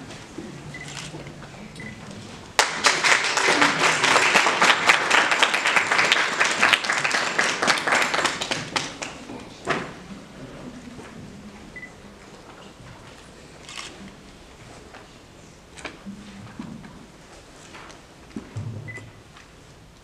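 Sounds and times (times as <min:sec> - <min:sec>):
audience applauding: 0:02.6 - 0:09.4.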